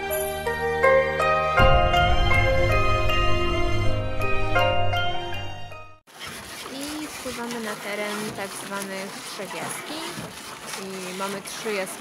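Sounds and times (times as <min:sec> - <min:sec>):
background music: 0:00.0 - 0:06.0
faint water noise: 0:06.1 - 0:12.0.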